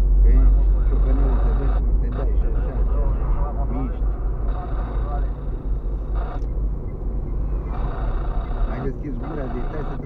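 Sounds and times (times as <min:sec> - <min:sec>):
car driving rumble from inside: 0:00.0 - 0:10.0.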